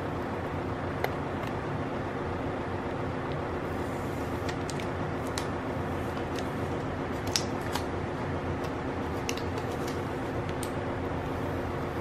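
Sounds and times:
plastic film clicks: 7.2 - 7.9, 8.6 - 10.8.

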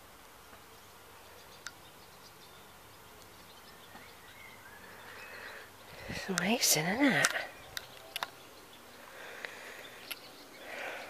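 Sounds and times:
distant birds chirping: 0.0 - 11.0.

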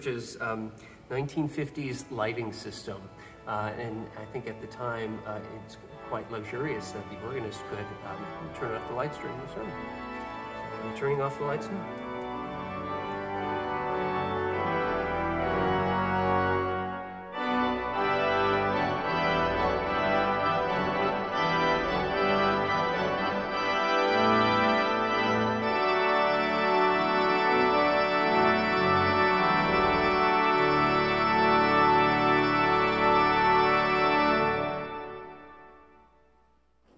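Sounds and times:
pipe organ playing chords: 0.0 - 36.9.

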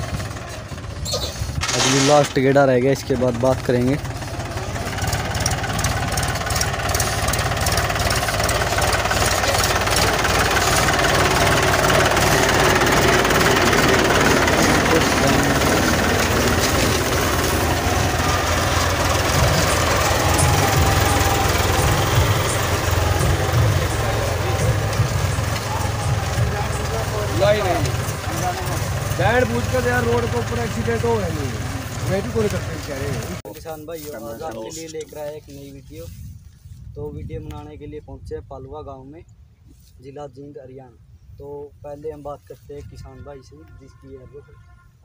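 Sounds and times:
tractor diesel engine running: 0.0 - 35.1.

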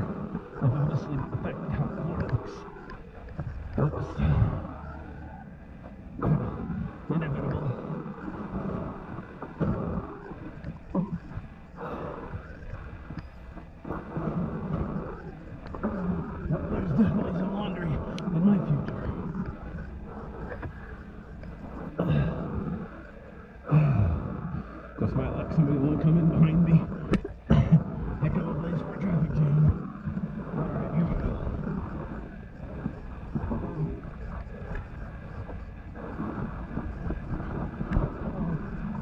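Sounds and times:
person grunting and breathing: 22.0 - 22.7, 23.7 - 24.7.

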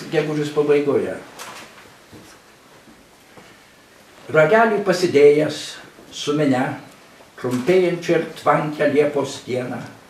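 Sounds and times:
man talking: 0.0 - 1.3, 4.3 - 10.0.

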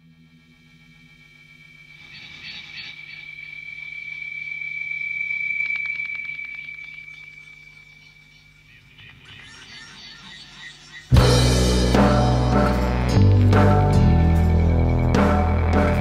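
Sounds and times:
horror soundtrack drone: 0.0 - 16.0
crackling clicks: 2.0 - 11.2.

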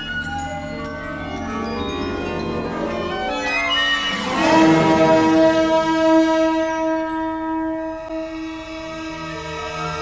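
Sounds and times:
high ringing overtones: 0.0 - 10.0
orchestra holding a chord: 3.9 - 10.0.

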